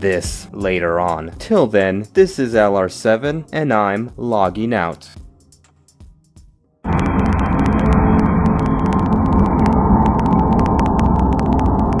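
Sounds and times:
sharp crackling clicks: 6.9s - 12.0s.

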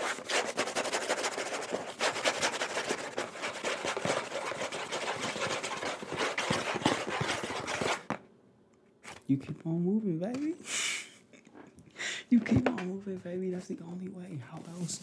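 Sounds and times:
cardboard box crackling: 1.6s - 8.2s.

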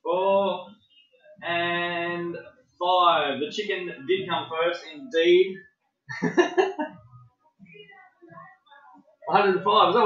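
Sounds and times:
man laughing: 6.1s - 7.0s.

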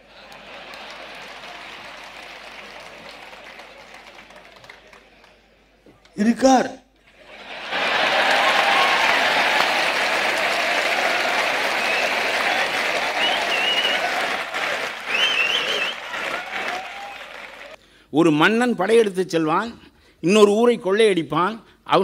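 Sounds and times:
audience applause: 0.0s - 5.4s, 7.2s - 17.8s.

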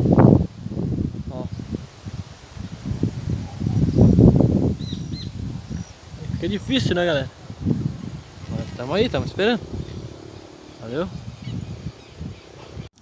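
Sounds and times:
wind gusting on microphone: 0.0s - 13.0s.

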